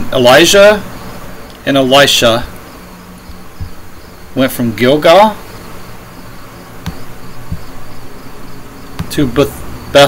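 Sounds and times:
crickets chirping: 0.0 - 10.0.

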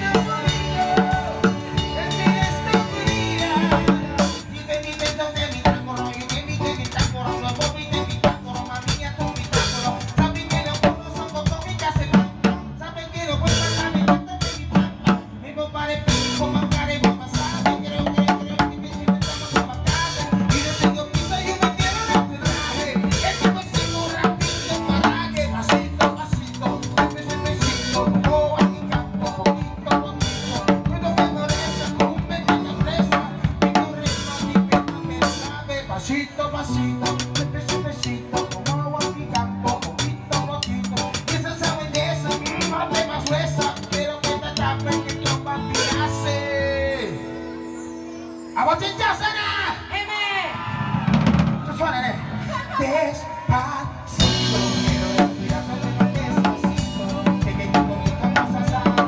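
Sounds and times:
drums and cymbals: 0.0 - 12.8, 13.4 - 15.4, 16.1 - 35.7, 36.9 - 46.2, 50.6 - 52.2, 53.2 - 59.0
bass guitar: 0.0 - 59.0.

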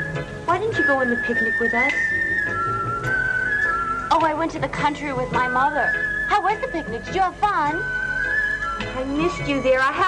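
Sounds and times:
film music with whistle-like melody: 0.0 - 10.0.

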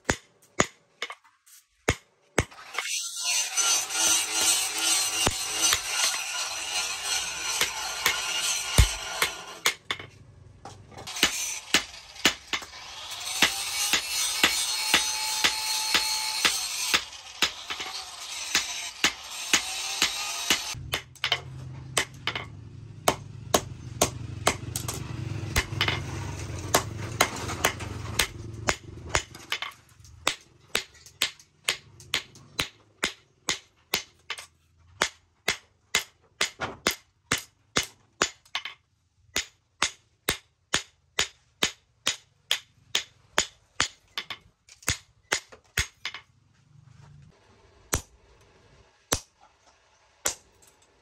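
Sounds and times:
hammer striking on anvil: 7.5 - 10.1, 18.5 - 25.0.

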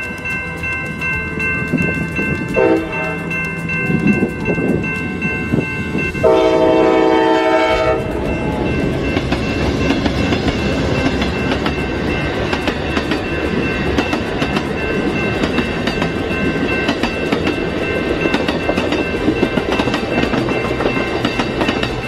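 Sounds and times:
high ringing tones: 0.0 - 22.0
passenger train rumbling past: 0.0 - 22.0
train wheels clicking over rail joints: 0.0 - 22.0.

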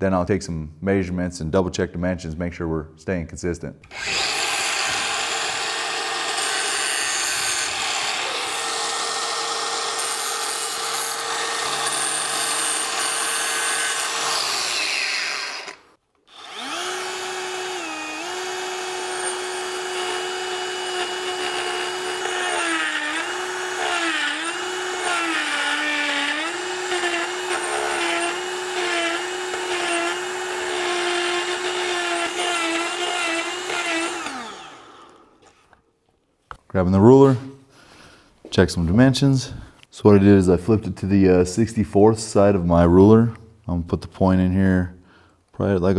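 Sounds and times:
die grinder grinding metal: 3.9 - 35.5.

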